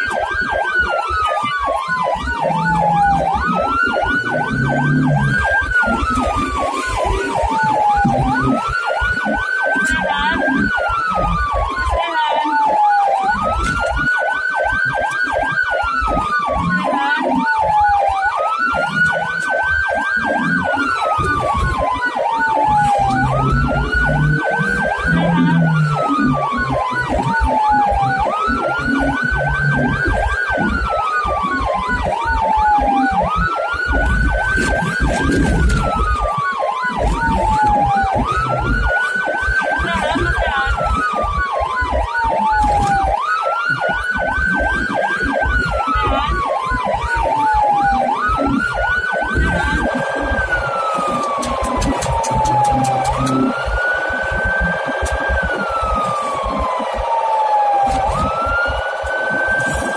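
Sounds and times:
ambulance siren wailing: 0.0s - 59.9s
engine and road noise rumble: 0.0s - 59.9s.

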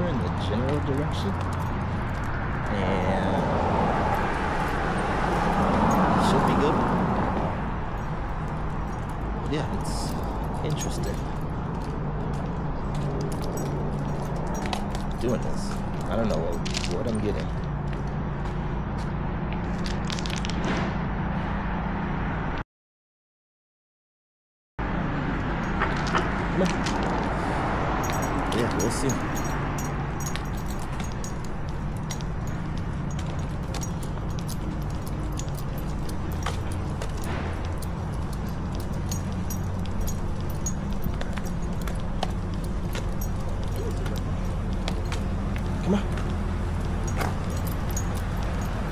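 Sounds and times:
light clicks and jingles: 0.0s - 18.6s, 25.6s - 48.9s
low street rumble: 0.0s - 22.5s, 24.8s - 48.9s.

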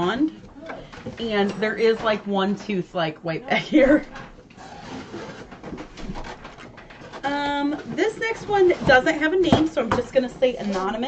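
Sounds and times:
cardboard box rustling and scraping: 4.6s - 7.2s.

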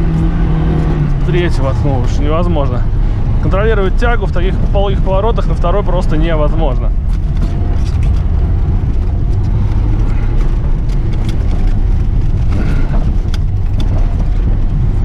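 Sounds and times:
car engine low rumble: 0.0s - 15.0s
sharp clicks and knocks: 6.9s - 15.0s.

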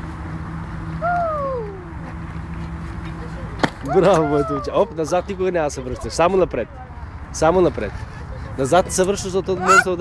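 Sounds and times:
child's voice sliding down: 1.0s - 2.0s.

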